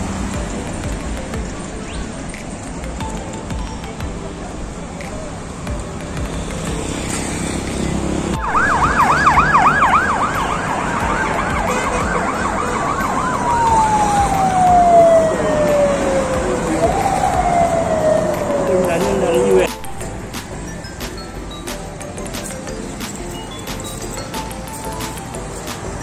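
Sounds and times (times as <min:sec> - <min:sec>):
vehicle siren yelp and wail: 0:08.2 - 0:20.0.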